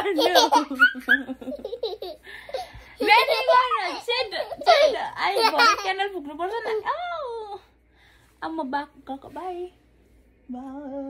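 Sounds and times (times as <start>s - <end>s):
girl laughing: 0.0s - 6.0s.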